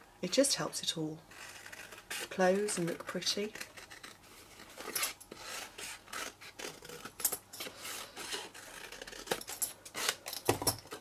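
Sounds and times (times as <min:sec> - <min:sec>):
scissors snipping cardstock: 0:02.1 - 0:04.1.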